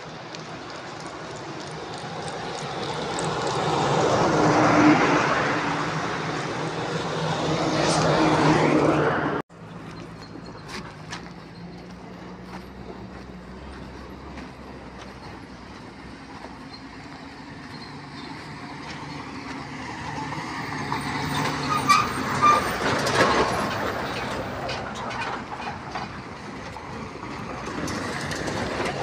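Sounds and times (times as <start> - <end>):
diesel truck passing: 0.0 - 29.0.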